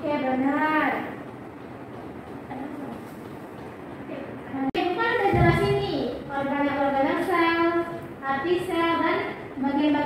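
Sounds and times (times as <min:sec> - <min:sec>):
classroom background noise: 0:00.0 - 0:10.0.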